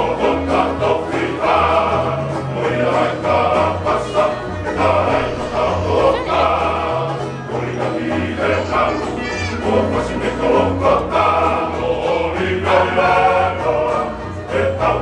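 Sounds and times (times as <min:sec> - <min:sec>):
men's choir singing in harmony: 0:00.0 - 0:15.0
strummed acoustic guitars: 0:00.0 - 0:15.0.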